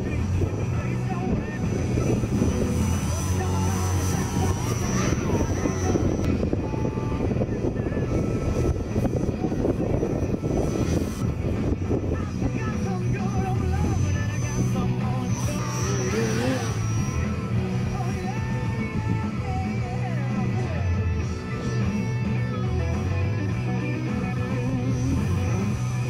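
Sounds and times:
model plane motor whine: 0.0s - 26.0s.

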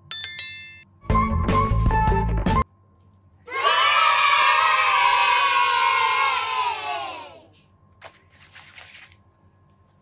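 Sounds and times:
children cheering: 3.5s - 7.5s.

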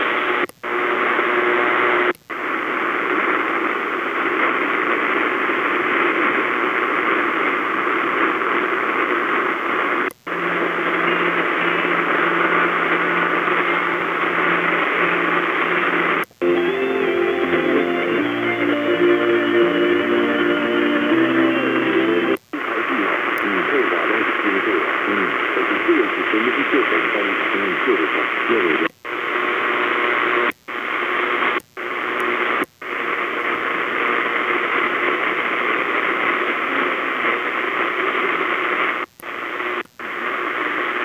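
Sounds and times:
radio static: 0.0s - 41.0s
music on radio: 16.4s - 31.4s
faint radio speech: 22.4s - 29.0s.

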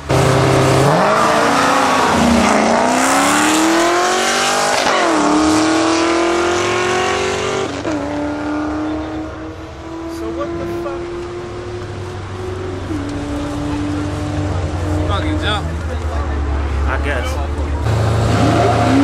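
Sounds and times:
cars accelerating hard: 0.0s - 19.0s.

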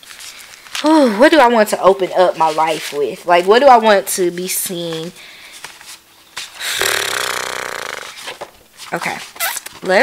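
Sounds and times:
person's raspy vocal sound: 6.6s - 8.2s.

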